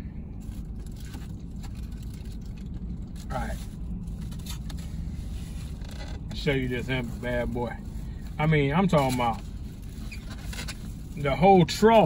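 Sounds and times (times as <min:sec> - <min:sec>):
low hum inside a car: 0:00.0 - 0:12.0.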